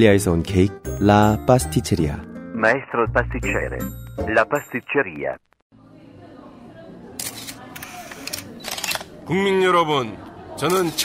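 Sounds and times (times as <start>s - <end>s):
camera shutters clicking: 7.2s - 9.1s.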